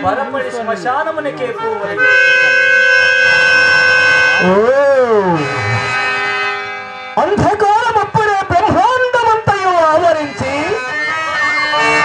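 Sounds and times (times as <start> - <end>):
harmonium holding a chord: 0.0 - 12.0.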